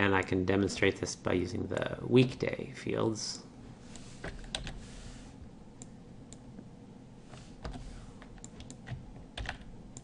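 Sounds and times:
computer keyboard keystrokes: 4.3 - 4.8, 7.6 - 10.0.

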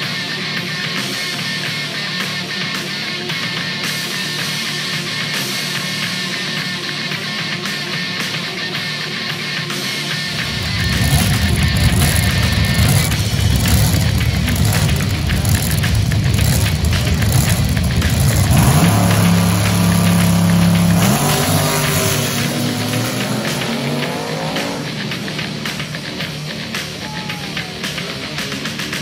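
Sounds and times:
drag car engines running rough: 0.0 - 29.0
car engine revving away: 10.3 - 26.8.

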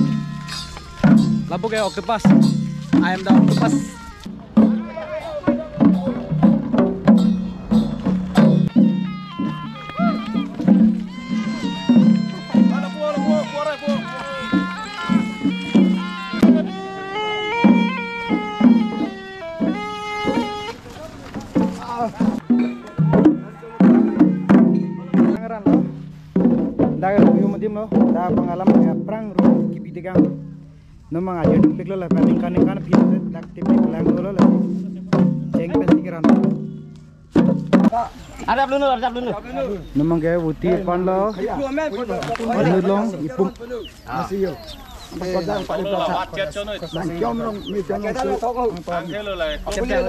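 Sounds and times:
wavering melody: 0.0 - 28.4
hand-beaten barrel drums: 0.0 - 50.0.

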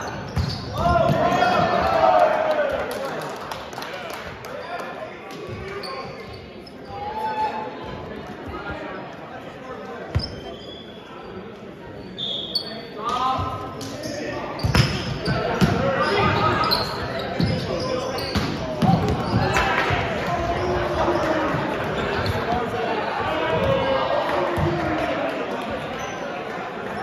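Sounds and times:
echoing shouts and chatter: 0.0 - 27.0.

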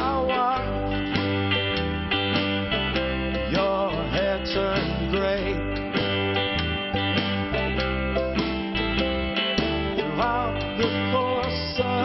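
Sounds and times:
man singing: 0.0 - 0.9, 3.4 - 5.9, 10.0 - 12.0
rock band playing live: 0.0 - 12.0.

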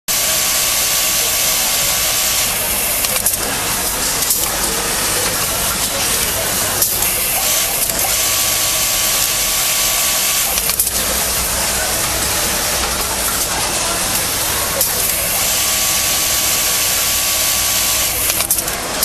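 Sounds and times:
sewing machines hissing: 0.1 - 19.0.

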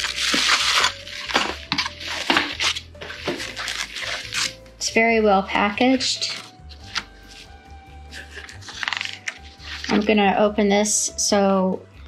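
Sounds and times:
paper and packaging rustling: 0.0 - 4.9, 5.8 - 10.3
quiet background music: 0.0 - 12.0
woman's voice: 4.8 - 6.4, 9.9 - 11.9.

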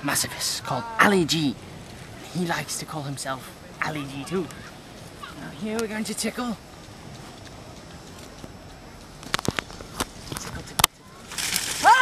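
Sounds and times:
bush rustling: 0.0 - 12.0
leaves and twigs crackling: 0.0 - 12.0.

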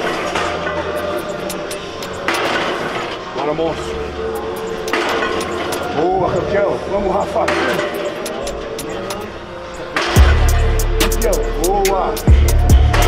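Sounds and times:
voice over music: 0.0 - 13.0
music with steady beat: 7.5 - 13.0.

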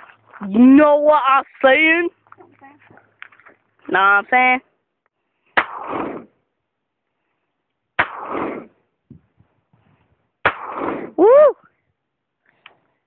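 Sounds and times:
revolver gunshots: 5.6 - 6.4, 8.0 - 8.8, 10.4 - 11.2.

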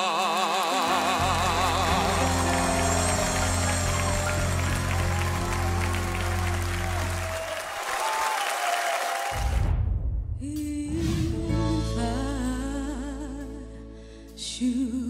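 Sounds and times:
audience applause and cheering: 0.0 - 9.8.

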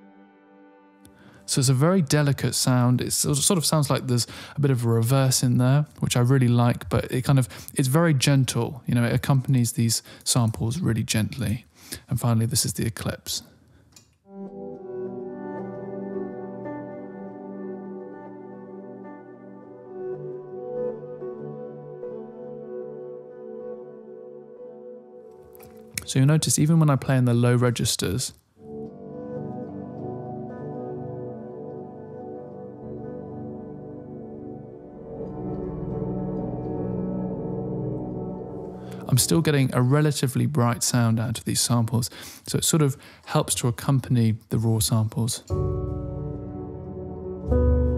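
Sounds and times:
piano low chords: 0.0 - 9.7, 14.3 - 27.7, 28.6 - 41.1, 45.4 - 47.9
warm sustained synth pad chord: 28.6 - 39.2, 45.5 - 47.9.

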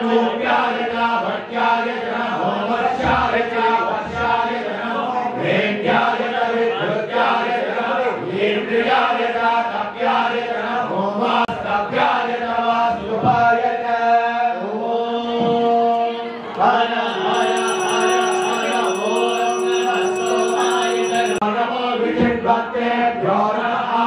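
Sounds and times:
mantras chanted: 0.0 - 24.0.

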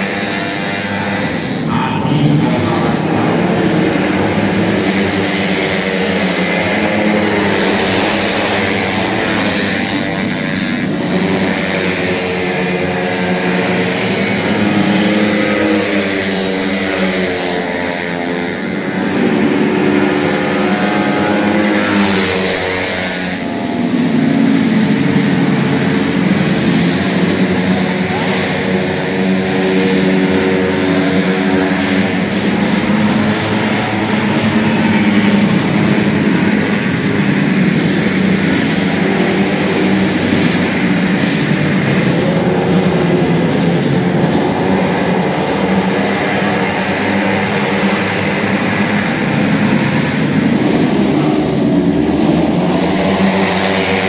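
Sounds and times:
scooter engines revving: 0.0 - 54.0.

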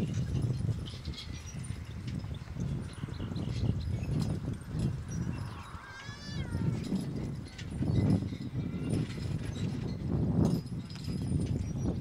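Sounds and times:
cart and harness rattle: 0.0 - 12.0.

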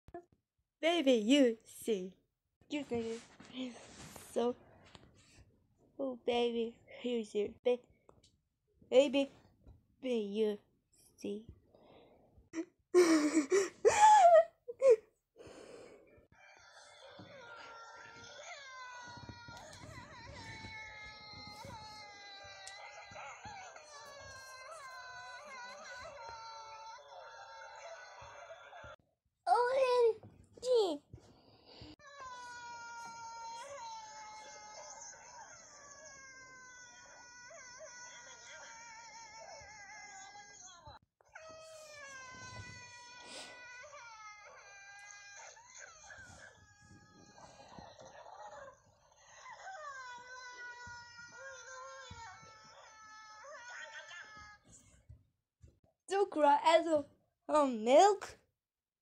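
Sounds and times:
high-pitched crying wail: 17.0 - 28.8, 32.0 - 54.7.

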